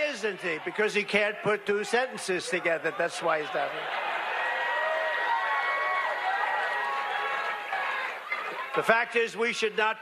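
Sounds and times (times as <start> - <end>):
crowd shouting and cheering: 0.0 - 10.0
applause: 5.1 - 8.2.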